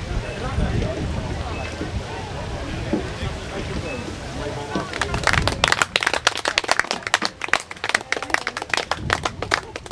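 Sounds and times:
people applauding: 4.8s - 9.9s.

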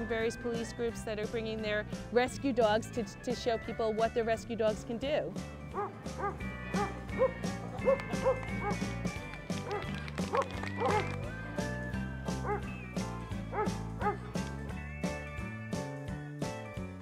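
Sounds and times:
background music with steady beat: 0.0s - 17.0s
dog barking: 5.8s - 8.8s, 9.7s - 11.1s, 12.4s - 12.6s.

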